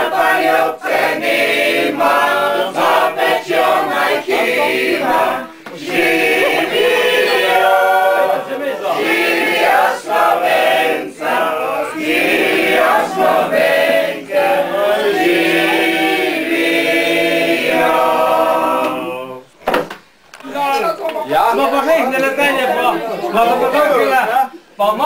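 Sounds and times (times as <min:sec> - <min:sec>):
group singing unaccompanied: 0:00.0 - 0:19.5.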